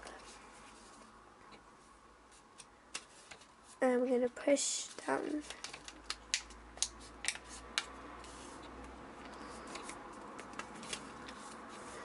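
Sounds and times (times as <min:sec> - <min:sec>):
faint paper rustle: 0:02.3 - 0:06.1
paper crinkles: 0:04.8 - 0:06.2
paper rustling: 0:04.8 - 0:06.2, 0:09.2 - 0:12.0
paper crinkling ticks: 0:04.9 - 0:08.4.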